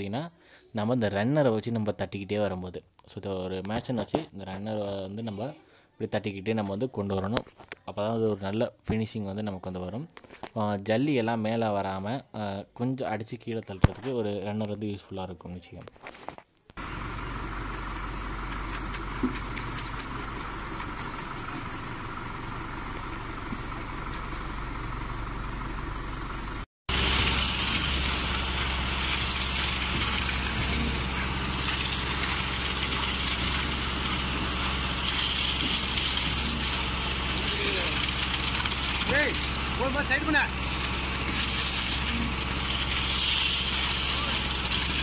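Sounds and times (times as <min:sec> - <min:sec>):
concrete pump engine running: 0:16.8 - 0:45.0.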